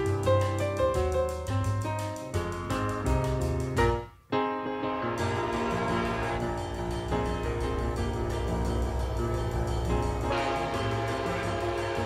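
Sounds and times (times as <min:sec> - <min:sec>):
jazz piano music with bass: 0:00.0 - 0:12.0
locomotive air horn: 0:10.3 - 0:12.0.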